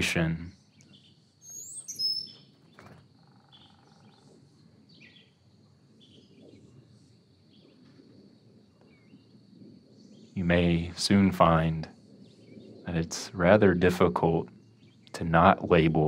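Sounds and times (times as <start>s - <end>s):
small birds chirping: 0.0s - 16.0s.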